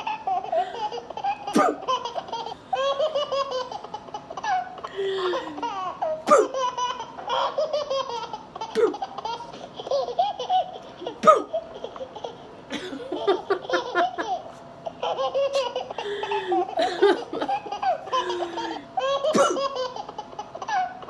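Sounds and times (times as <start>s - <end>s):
woman laughing high-pitched: 4.9s - 6.6s, 12.8s - 14.6s, 15.5s - 19.7s.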